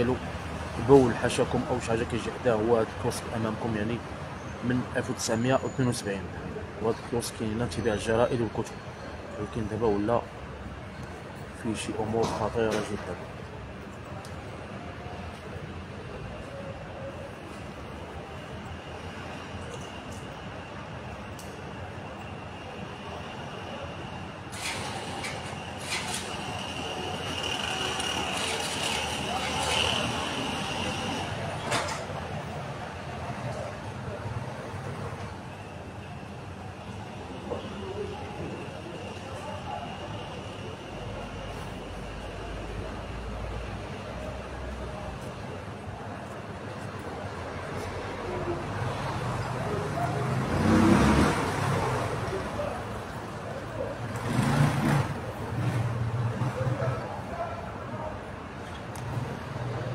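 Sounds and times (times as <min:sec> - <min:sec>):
street traffic: 0:00.0 - 0:59.9
vehicle passing: 0:48.4 - 0:57.0.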